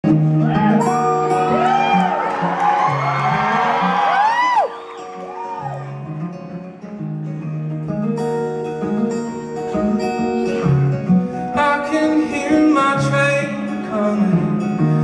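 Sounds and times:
acoustic guitar chords: 0:00.0 - 0:15.0
audience cheering and whistling: 0:00.3 - 0:06.2.

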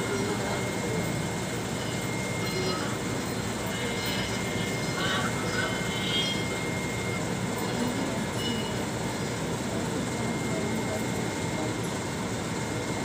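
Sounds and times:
faint indistinct voices: 0:00.0 - 0:13.0.

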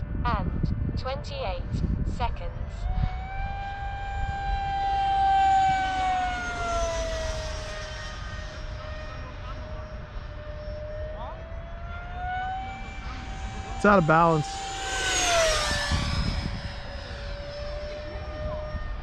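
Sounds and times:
electric ducted fan whining: 0:00.0 - 0:19.0
person speaking: 0:13.7 - 0:14.7.

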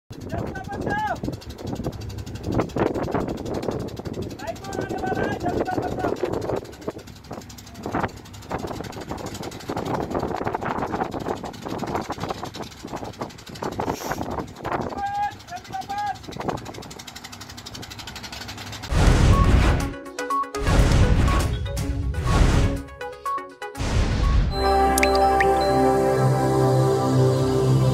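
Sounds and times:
wind buffeting microphone: 0:00.1 - 0:15.0, 0:16.2 - 0:17.1
ship engine low rumble: 0:00.1 - 0:19.9
man shouting: 0:14.9 - 0:16.2.

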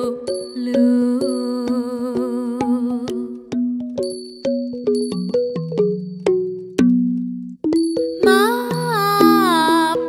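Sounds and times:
girl singing with vibrato: 0:00.0 - 0:03.4, 0:08.2 - 0:10.0
bamboo xylophone notes: 0:00.0 - 0:10.0.

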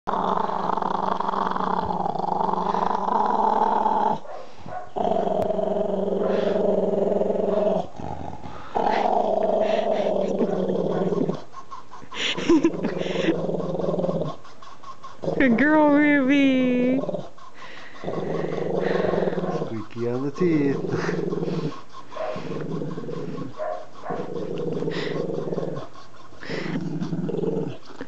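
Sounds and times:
dog growling: 0:00.1 - 0:28.0.

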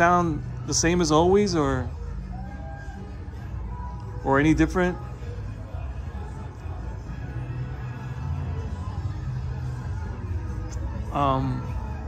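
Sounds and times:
parade music from television: 0:00.0 - 0:12.0.

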